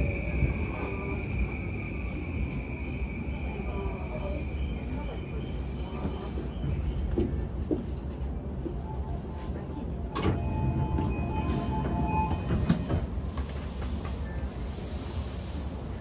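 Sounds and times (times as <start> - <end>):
train running rumble: 0.0 - 16.0.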